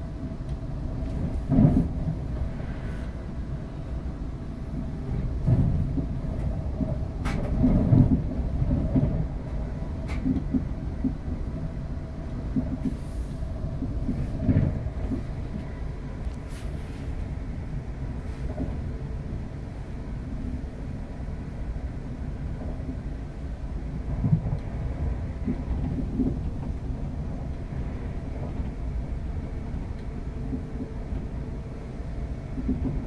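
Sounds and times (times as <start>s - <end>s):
train wheels rumbling on rail: 0.0s - 33.0s.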